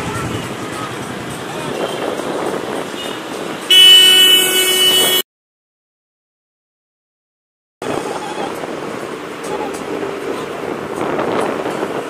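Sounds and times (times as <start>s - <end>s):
street traffic noise: 0.0s - 5.3s, 7.8s - 12.0s
loud steady vehicle horn: 3.0s - 5.2s.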